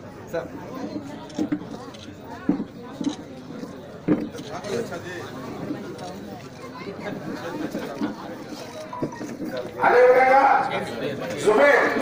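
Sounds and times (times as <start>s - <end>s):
people talking in background: 0.0s - 12.0s
man's loud voice: 9.8s - 12.0s.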